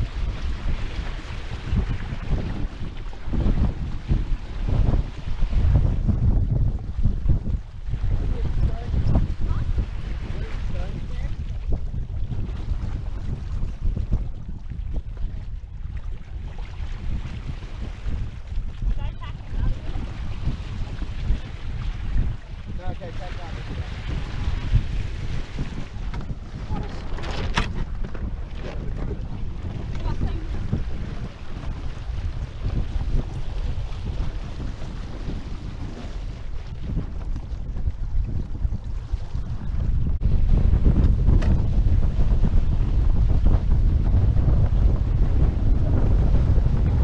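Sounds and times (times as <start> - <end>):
water washing along hulls: 0.0 - 47.0
wind buffeting microphone: 0.0 - 47.0.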